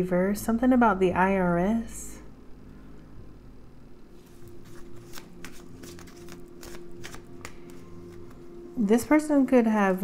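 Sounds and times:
cards being shuffled: 4.2s - 8.4s.

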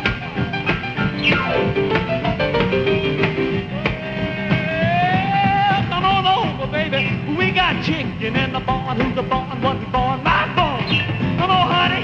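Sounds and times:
boogie piano: 0.0s - 12.0s
drums: 0.0s - 12.0s
rock and roll band playing: 0.0s - 12.0s.

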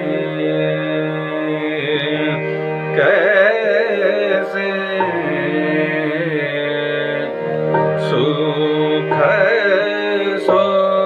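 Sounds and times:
man singing classical vocal: 0.0s - 11.0s
sustained accompanying notes: 0.0s - 11.0s.

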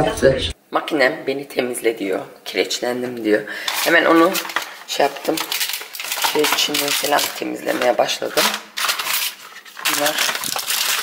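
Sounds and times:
cardboard and foil packs rustling: 3.6s - 11.0s.

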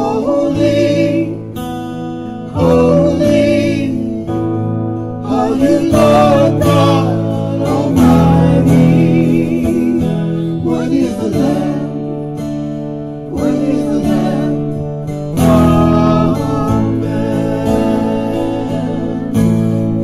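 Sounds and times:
person singing: 0.0s - 1.6s, 2.2s - 4.6s, 5.2s - 12.2s, 13.2s - 20.0s
strummed acoustic guitar: 0.0s - 20.0s.

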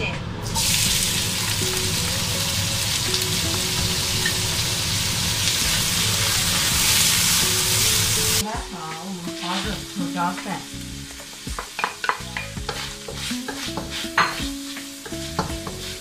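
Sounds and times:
meat sizzling in hot oil: 0.4s - 16.0s
wooden spatula stirring: 12.6s - 16.0s.

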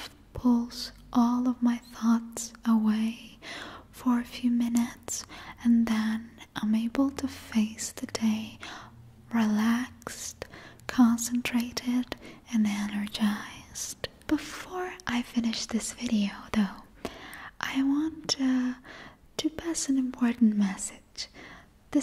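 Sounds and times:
woman whispering softly: 0.0s - 8.6s, 9.3s - 18.8s, 19.4s - 21.4s.

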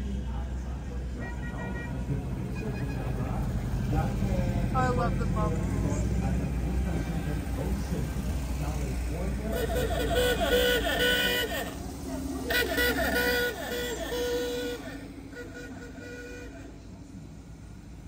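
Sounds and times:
crowd voices: 0.0s - 18.0s
van engines rumbling: 0.0s - 18.0s
horn toots: 1.1s - 5.4s, 6.9s - 17.1s.

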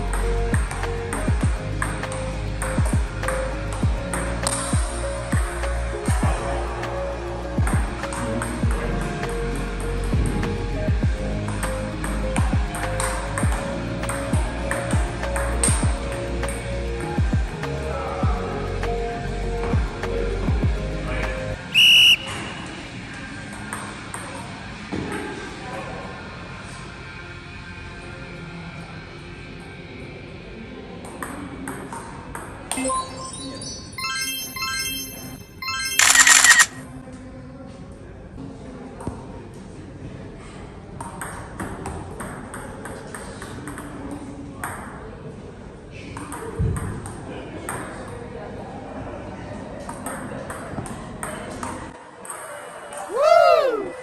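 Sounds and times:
electronic music with bass swoops: 0.0s - 21.6s
loud whistle blast: 21.7s - 22.6s.

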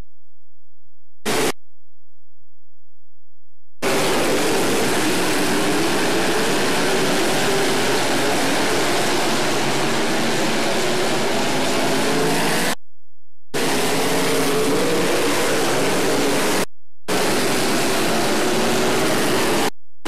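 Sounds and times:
race car engines racing: 3.8s - 12.8s, 13.6s - 19.7s.

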